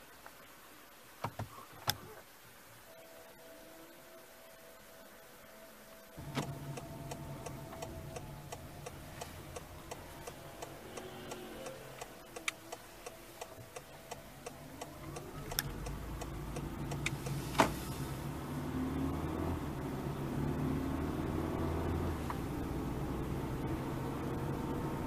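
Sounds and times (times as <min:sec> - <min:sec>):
low steady hum: 0:00.0 - 0:25.0
rising whine: 0:02.9 - 0:25.0
car indicator ticking: 0:06.2 - 0:17.8.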